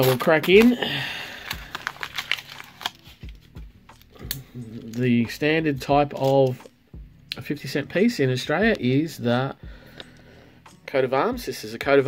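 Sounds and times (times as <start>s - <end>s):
paper wrapper crinkling: 0.0s - 5.2s, 6.1s - 6.7s.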